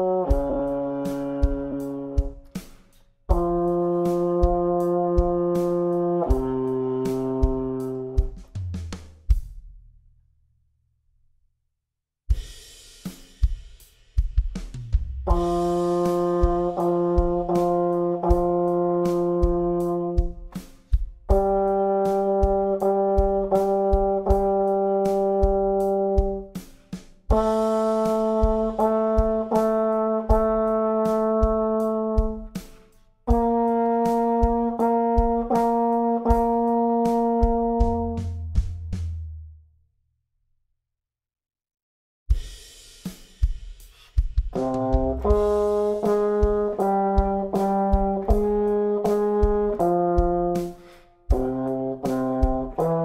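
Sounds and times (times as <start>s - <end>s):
drum-kit backing beat: 0.0s - 9.9s, 12.3s - 39.6s, 42.3s - 53.0s
euphonium playing: 44.6s - 47.1s.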